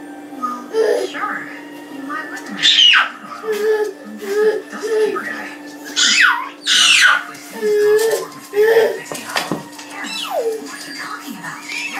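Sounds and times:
toddler babbling: 0.7 - 1.2, 2.7 - 5.3, 6.0 - 9.1
toddler squealing: 2.6 - 5.2, 5.9 - 9.0.

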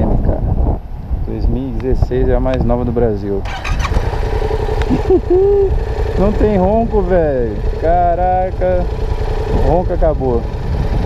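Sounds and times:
motorcycle engine idling: 3.2 - 11.0.

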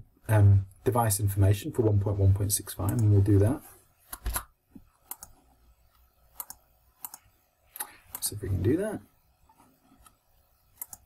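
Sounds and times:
computer mouse clicking: 2.8 - 3.1, 4.1 - 8.3, 10.8 - 11.0.

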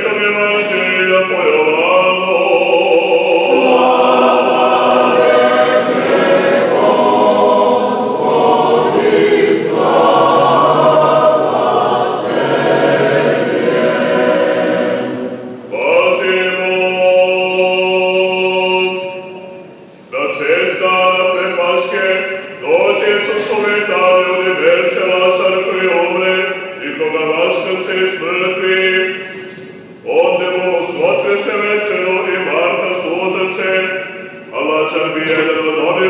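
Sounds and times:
choir singing unaccompanied: 0.0 - 19.5.

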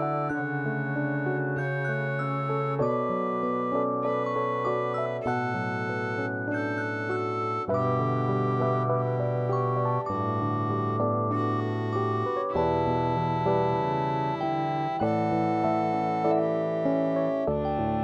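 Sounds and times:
electric piano chords: 0.0 - 18.0.

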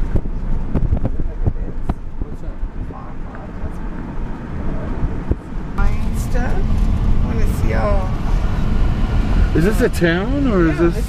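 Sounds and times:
wind buffeting microphone: 0.0 - 10.9
car road and engine rumble: 0.0 - 11.0.

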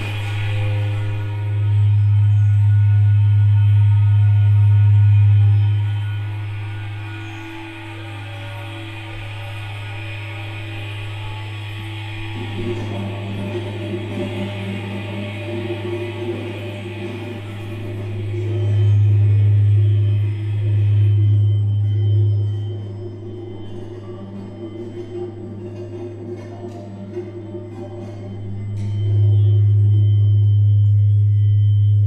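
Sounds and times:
faint higher tones: 0.0 - 32.0
low drone tone: 0.0 - 32.0.

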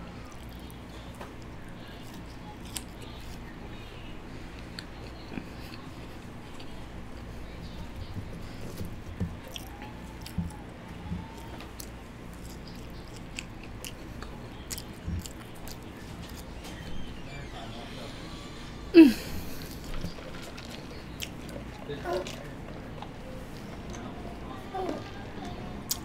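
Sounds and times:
low room hum: 0.0 - 26.0
person chewing crunchy fries: 0.2 - 3.6, 8.6 - 16.7, 19.4 - 23.1.

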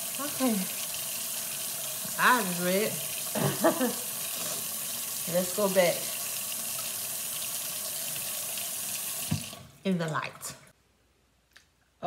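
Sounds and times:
faucet running into sink: 0.0 - 10.2.

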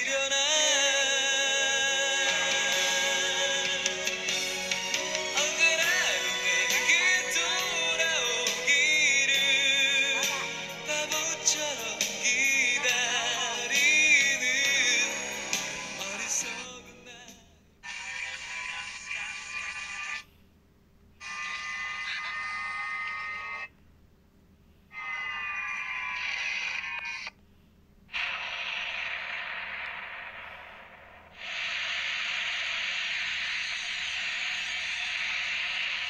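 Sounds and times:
steady hiss: 28.1 - 36.0.

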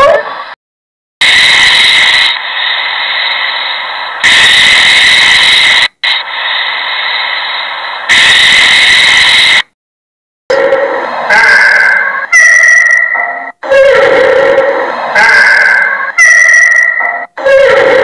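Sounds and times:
snake hissing: 1.2 - 9.6
pitched tones: 10.5 - 18.0.

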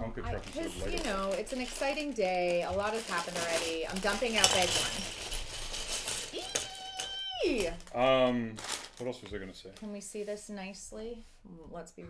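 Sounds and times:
plastic pieces clattering on wood: 0.8 - 7.9.

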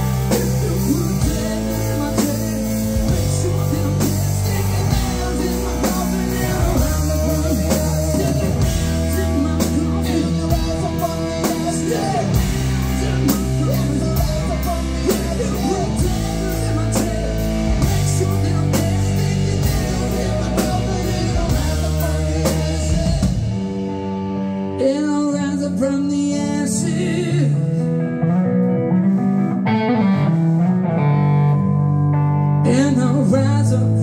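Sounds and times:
bass guitar notes: 0.0 - 34.0
lead electric guitar bending: 0.0 - 34.0.

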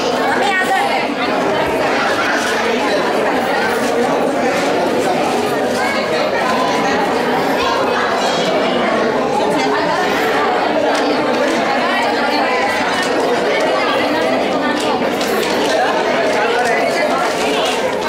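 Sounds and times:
chatter of many voices: 0.0 - 18.0.

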